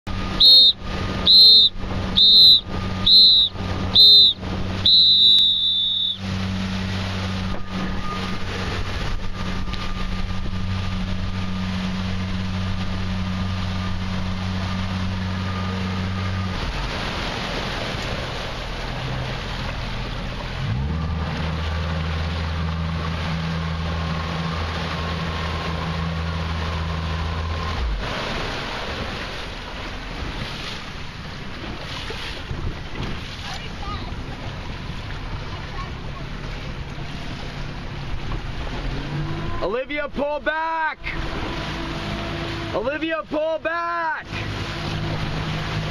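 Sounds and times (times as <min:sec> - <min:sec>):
motorboat engine humming: 0:00.0 - 0:45.9
wind: 0:00.0 - 0:45.9
rushing water: 0:00.1 - 0:45.9
shrill whistle blasts: 0:00.3 - 0:06.2.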